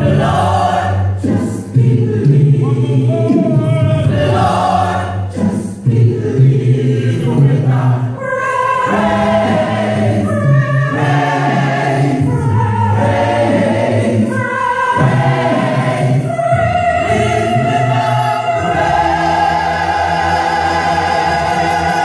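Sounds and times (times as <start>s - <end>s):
gospel choir singing a cappella: 0.0s - 22.0s.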